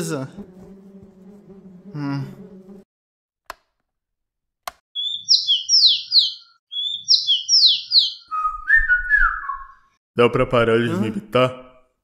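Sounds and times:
songbird singing: 0:05.0 - 0:09.8.

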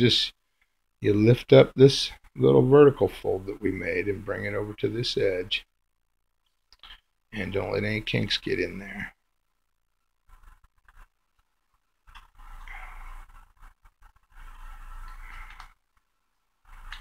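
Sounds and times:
paper bill rustling and rubbing: 0:10.3 - 0:16.1
small crinkling clicks: 0:10.3 - 0:16.1.

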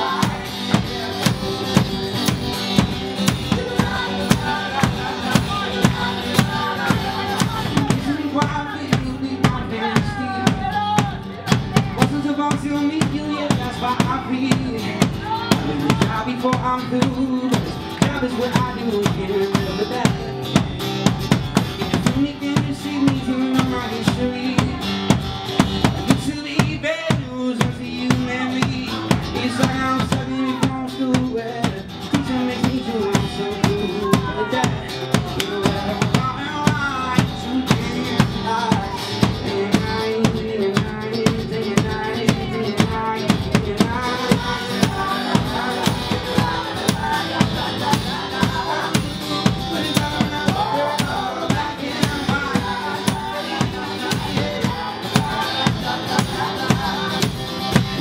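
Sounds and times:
large drum beat: 0:00.0 - 0:58.0
strummed acoustic guitar: 0:00.0 - 0:58.0.

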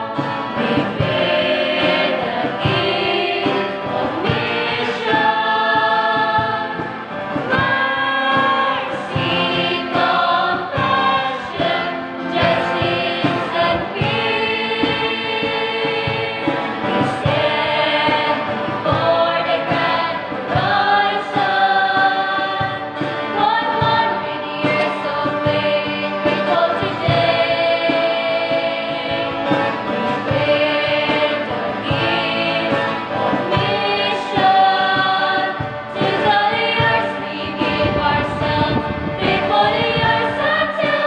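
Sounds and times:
group singing a hymn: 0:00.0 - 0:41.0.

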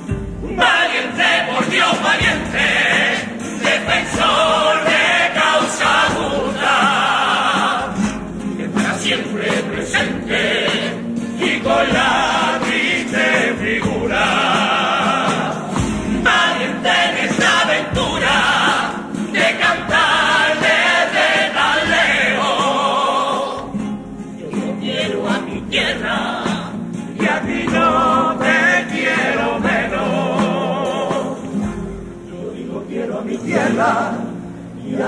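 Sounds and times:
chorus singing in harmony: 0:00.0 - 0:35.0.

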